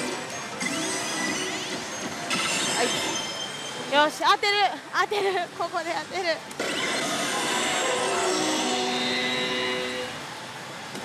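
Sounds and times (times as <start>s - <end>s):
slot machine electronic music: 0.0s - 4.0s
bright effect tones: 0.0s - 4.2s
rising electronic tones: 0.0s - 4.2s.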